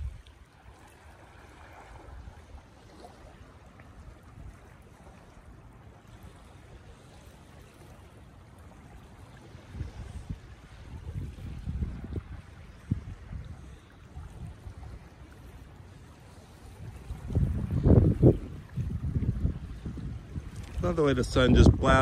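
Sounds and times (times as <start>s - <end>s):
wind buffeting microphone: 0.0s - 0.4s, 8.9s - 22.0s.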